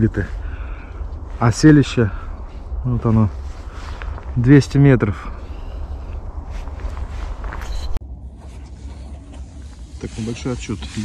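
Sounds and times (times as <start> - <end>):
wind buffeting microphone: 0.0 - 8.0.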